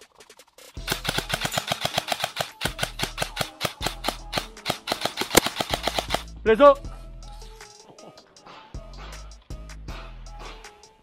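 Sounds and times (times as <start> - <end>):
airsoft gun firing bursts: 0.8 - 6.3.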